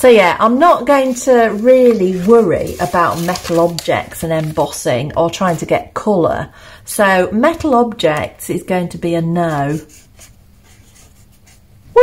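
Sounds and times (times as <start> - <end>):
felt-tip pen scratching on paper: 9.3 - 11.7.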